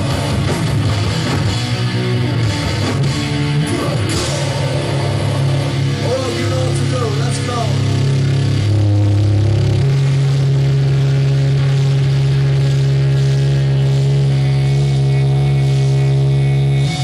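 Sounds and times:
distorted electric guitars and bass: 0:00.0 - 0:17.0.

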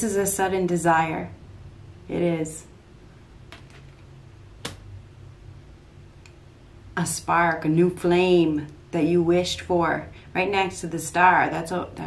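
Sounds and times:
low steady hum: 0:00.0 - 0:12.0
card snapping: 0:03.5 - 0:04.0, 0:04.6 - 0:04.8
cards clicking: 0:03.5 - 0:04.0.

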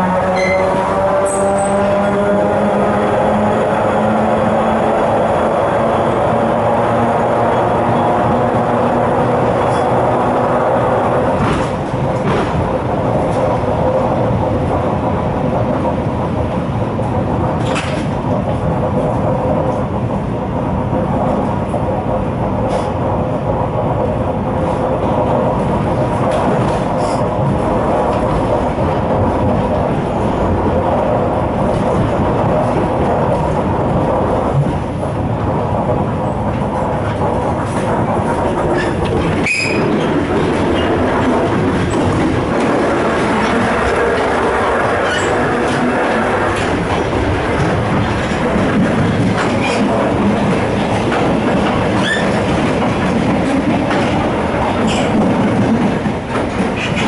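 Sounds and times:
train carriage rumbling on track: 0:00.0 - 0:57.0.

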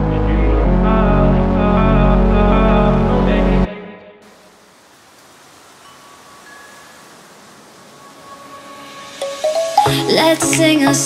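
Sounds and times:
faint even hiss: 0:04.2 - 0:11.0
thin high tones: 0:05.8 - 0:10.2.

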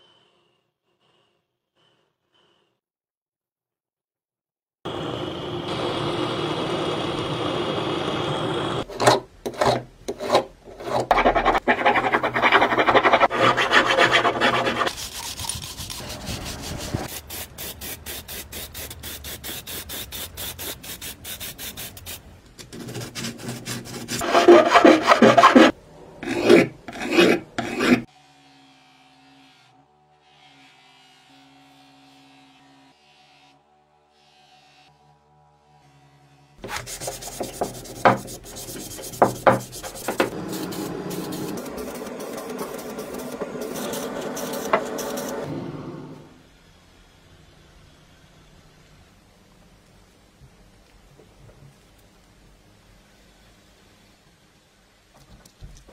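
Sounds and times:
rubbing and scraping on metal: 0:09.6 - 0:17.1, 0:22.7 - 0:28.1, 0:36.6 - 0:45.4.

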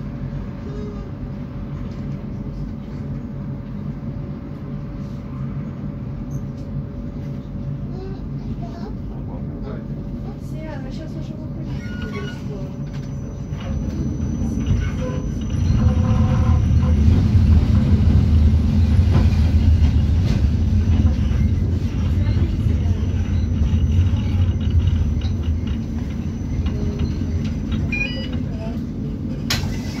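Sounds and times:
tram rumbling on rails: 0:00.0 - 0:30.0.

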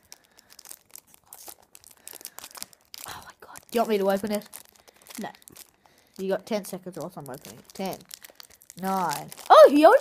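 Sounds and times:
wrapper crinkling: 0:00.0 - 0:10.0.

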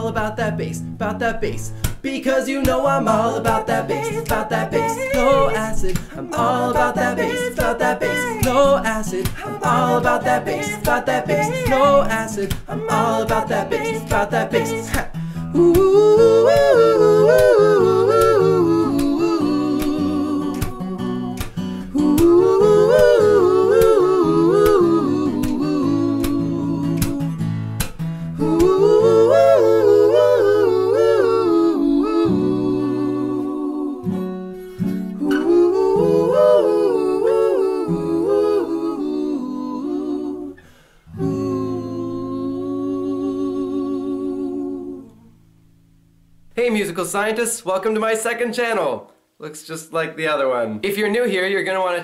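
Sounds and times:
a cappella singing: 0:00.0 - 0:45.4.

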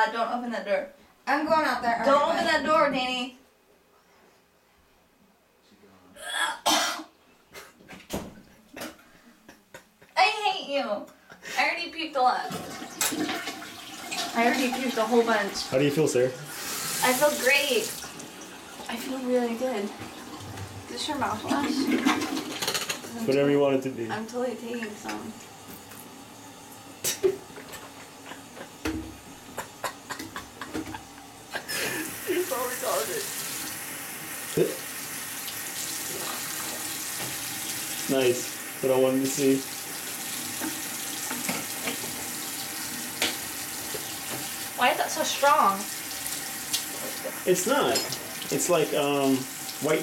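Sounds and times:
woman coughing and retching: 0:06.2 - 0:07.2, 0:08.7 - 0:09.0, 0:27.0 - 0:28.5, 0:29.5 - 0:32.5.

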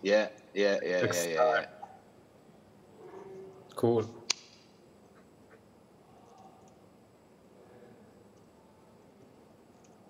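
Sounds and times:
sharp click: 0:04.3 - 0:04.7.

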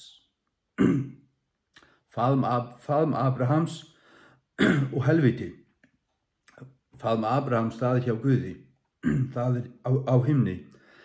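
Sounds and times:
man clearing throat: 0:00.8 - 0:01.3, 0:04.6 - 0:05.0, 0:09.0 - 0:09.4
mouth click: 0:01.7 - 0:02.0, 0:05.8 - 0:06.8.

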